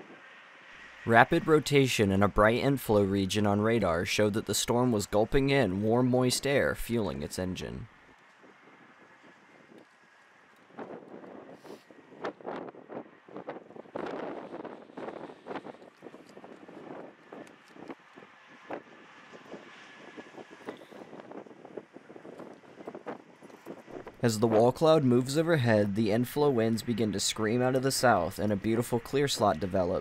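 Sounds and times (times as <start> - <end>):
highway traffic passing: 0.0 - 30.0
wind buffeting microphone: 1.1 - 30.0.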